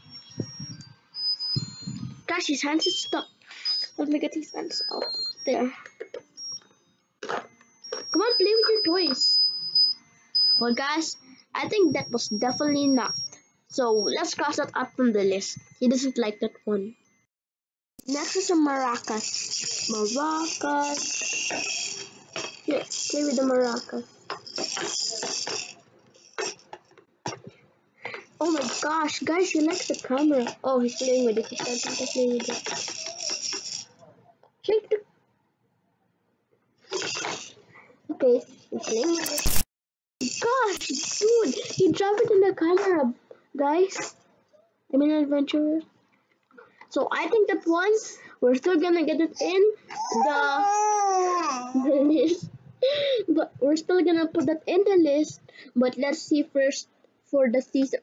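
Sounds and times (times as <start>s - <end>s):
faint high-pitched tones: 0.0s - 17.3s, 18.0s - 26.7s
maraca rattling: 18.0s - 27.0s, 28.2s - 34.0s, 36.9s - 37.6s, 38.7s - 39.6s, 40.2s - 42.3s, 43.9s - 44.2s.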